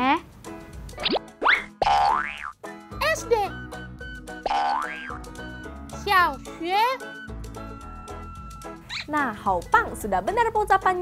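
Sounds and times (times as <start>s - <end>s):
light children's music: 0.0s - 11.0s.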